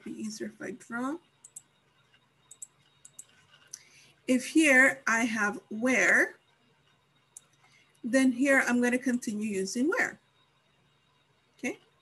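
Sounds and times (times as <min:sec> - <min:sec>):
computer mouse clicks: 0:01.4 - 0:03.9.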